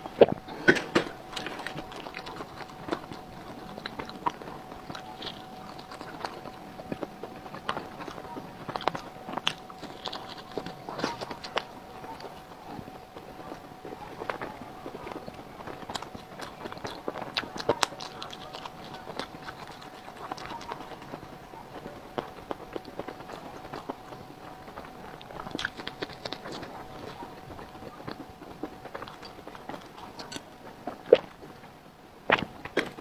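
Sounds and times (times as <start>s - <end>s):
person biting and chewing food: 0.0s - 31.6s, 32.3s - 33.0s
mouth eating sounds: 0.0s - 33.0s.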